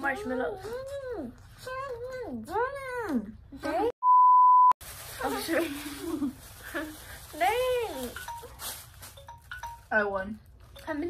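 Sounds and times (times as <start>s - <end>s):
censor bleep: 4.0s - 4.8s.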